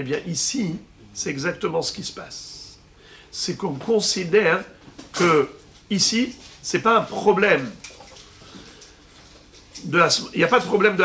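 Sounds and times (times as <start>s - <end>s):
man speaking: 0.0s - 7.8s, 9.8s - 11.0s.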